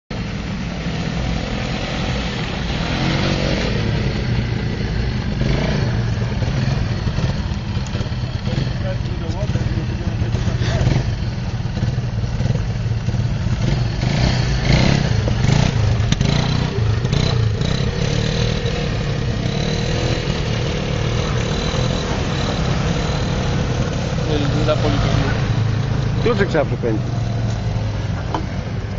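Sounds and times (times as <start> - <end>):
atv engine running: 0.1 - 28.9
indistinct voices: 20.5 - 27.2.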